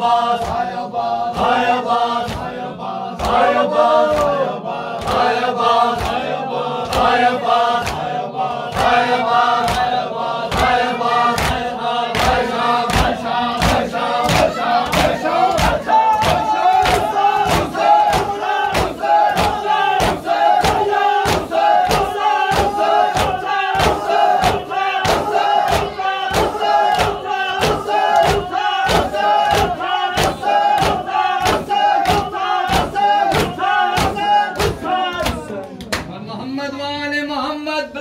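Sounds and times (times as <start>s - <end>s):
rhythmic chest beating: 0.0s - 35.4s
men chanting in unison: 0.0s - 35.6s.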